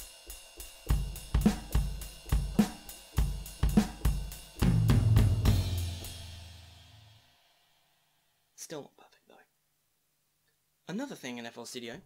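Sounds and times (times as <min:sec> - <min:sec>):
drum beat: 0:00.0 - 0:07.0
cymbal crash: 0:01.1 - 0:07.9.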